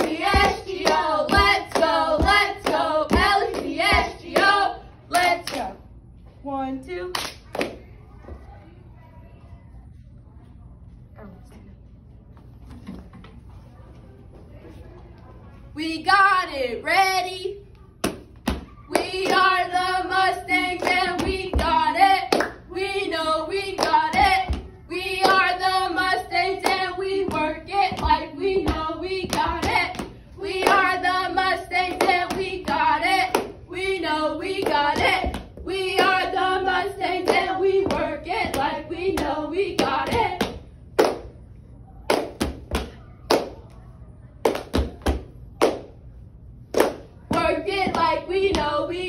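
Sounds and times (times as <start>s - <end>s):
hand claps: 0.0s - 5.7s, 20.8s - 22.6s, 37.2s - 41.4s, 44.4s - 45.9s, 46.8s - 48.7s
girls chanting a cheer: 0.0s - 5.8s, 18.5s - 40.6s, 46.8s - 49.0s.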